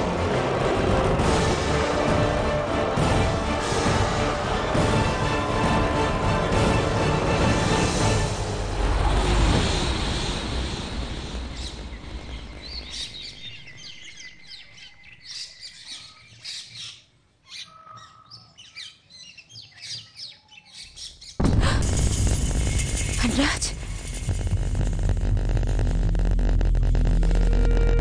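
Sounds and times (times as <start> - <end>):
music: 0.0 - 9.7, 22.3 - 28.0
loud abrupt sound: 6.6 - 13.8, 21.4 - 28.0
small birds chirping: 11.5 - 21.4.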